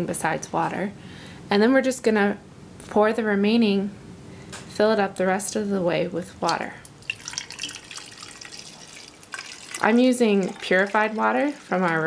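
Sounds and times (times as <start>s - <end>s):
water trickling into bottle: 6.8s - 12.0s.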